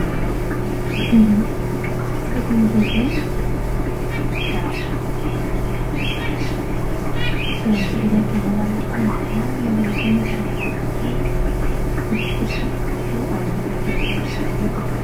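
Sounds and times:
steady electrical hum: 0.0s - 15.0s.

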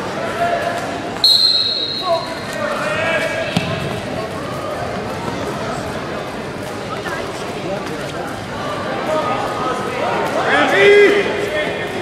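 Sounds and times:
referee's whistle blast: 1.2s - 2.5s.

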